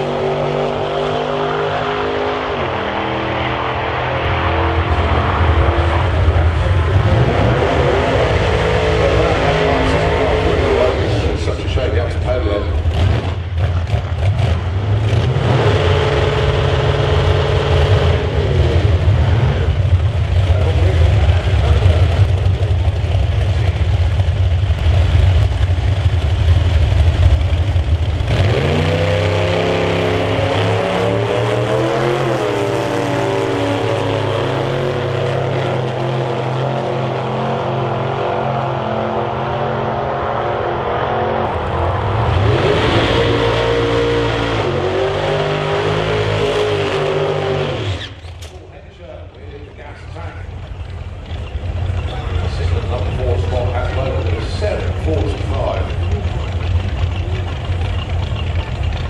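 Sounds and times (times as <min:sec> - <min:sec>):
drag racing car engines: 0:00.0 - 0:59.0.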